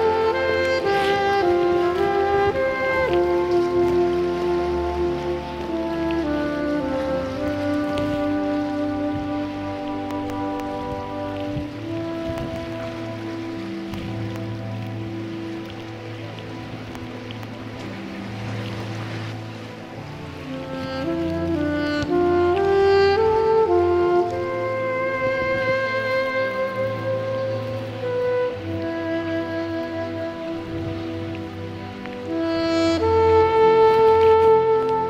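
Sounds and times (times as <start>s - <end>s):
military band wind and brass: 0.0s - 35.0s.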